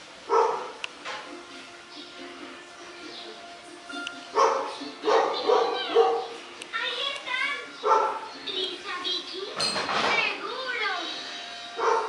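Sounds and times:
faint background music: 0:00.0 - 0:12.0
dog barking and yipping: 0:00.3 - 0:00.8, 0:04.3 - 0:06.4, 0:07.8 - 0:08.3, 0:11.8 - 0:12.0.

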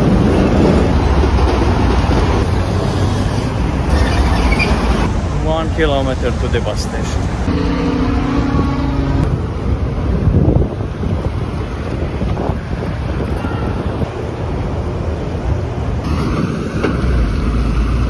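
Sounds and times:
street traffic rumble: 0:00.0 - 0:18.0
wind buffeting microphone: 0:07.3 - 0:16.1.

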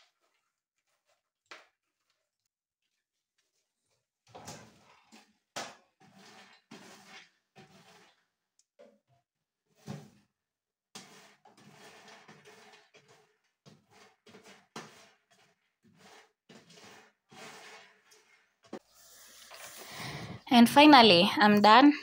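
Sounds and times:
spatula scraping nuts on metal tray: 0:06.0 - 0:08.3, 0:11.0 - 0:18.7.

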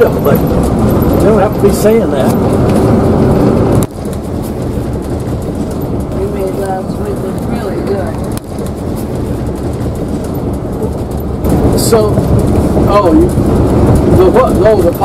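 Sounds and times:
road and engine rumble inside vehicle: 0:00.0 - 0:15.0.

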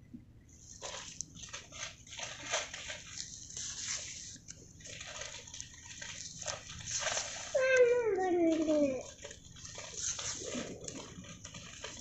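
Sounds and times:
faint rustling: 0:00.6 - 0:12.0.

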